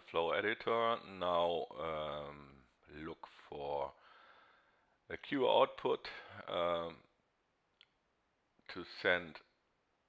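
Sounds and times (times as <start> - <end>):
person speaking: 0.0 - 4.0, 5.1 - 7.1, 8.7 - 9.4.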